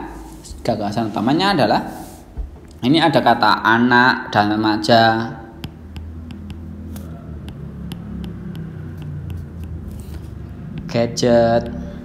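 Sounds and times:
stylus tapping on tablet: 0:05.6 - 0:11.0.

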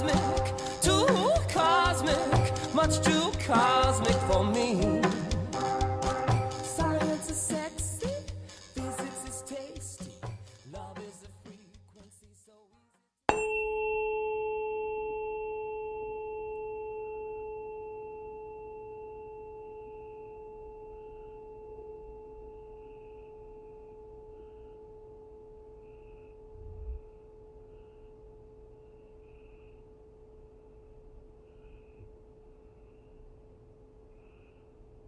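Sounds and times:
tuning fork ringing: 0:13.3 - 0:30.8.

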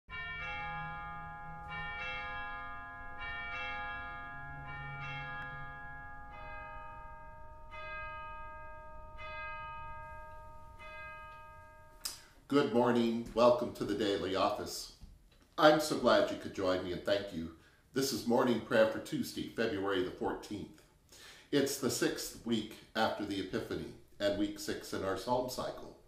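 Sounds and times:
bells ringing single strokes: 0:00.1 - 0:12.4.

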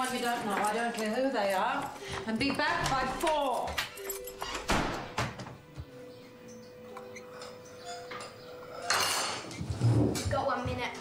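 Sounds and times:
spoons clinking against bowls: 0:06.9 - 0:09.5
chair scraping on wooden floor: 0:08.9 - 0:10.5.

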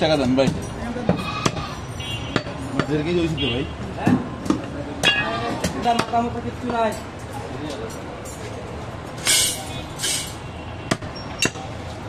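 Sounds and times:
metallic ring: 0:09.2 - 0:10.4.

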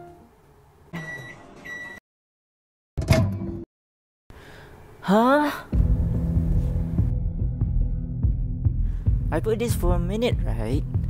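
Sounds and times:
microwave oven beeps: 0:01.0 - 0:02.0.

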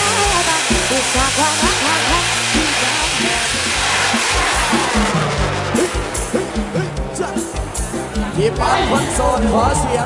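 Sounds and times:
rocket rushing hiss: 0:00.0 - 0:08.0
music with a steady beat: 0:00.0 - 0:10.0.

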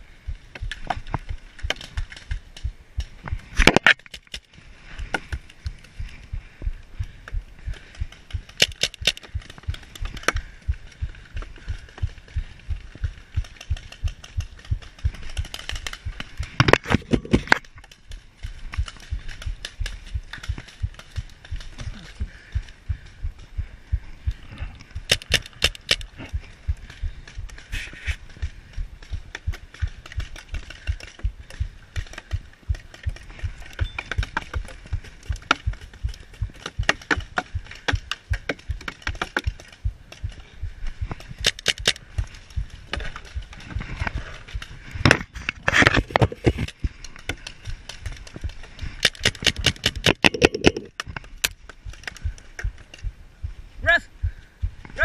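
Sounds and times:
constant low rumble: 0:00.0 - 0:55.0
paintball markers firing: 0:07.7 - 0:10.5, 0:25.0 - 0:26.2, 0:41.1 - 0:42.3, 0:48.9 - 0:52.8.

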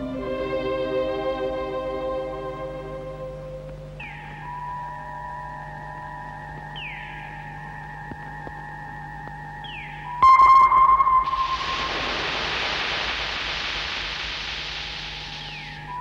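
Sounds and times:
long hiss: 0:00.0 - 0:04.8, 0:11.2 - 0:16.0
electronic drone and hum: 0:00.0 - 0:16.0
loud electronic tone: 0:10.1 - 0:16.0.

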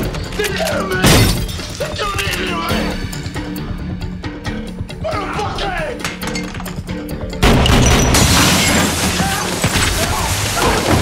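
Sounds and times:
film score music: 0:00.0 - 0:08.2
glass shattering: 0:07.4 - 0:11.0.

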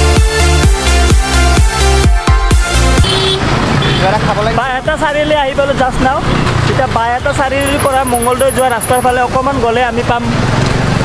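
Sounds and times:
street traffic: 0:00.0 - 0:11.0
man's voice: 0:04.0 - 0:10.4
bus engine close by: 0:05.5 - 0:11.0.

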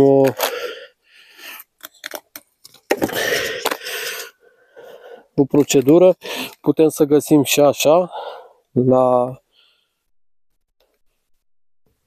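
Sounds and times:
small objects clicking and knocking: 0:01.7 - 0:03.9.

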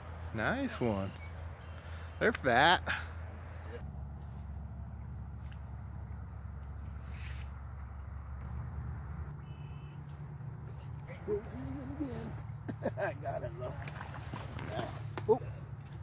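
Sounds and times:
distant freeway traffic drone: 0:00.0 - 0:16.0.

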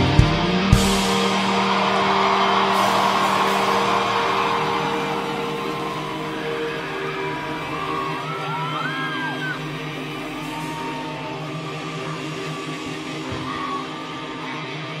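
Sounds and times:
electric guitar chord ringing: 0:00.0 - 0:15.0
crowd cheering and whooping: 0:00.5 - 0:15.0.

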